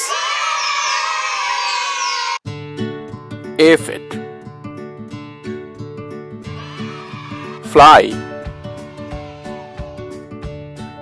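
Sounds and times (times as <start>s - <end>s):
children cheering: 0.0s - 2.4s, 6.5s - 7.7s, 8.7s - 10.0s.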